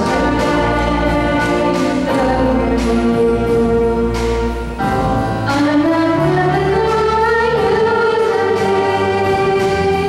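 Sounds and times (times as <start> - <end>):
jazz band with saxophones: 0.0 - 10.0
woman singing: 5.4 - 10.0.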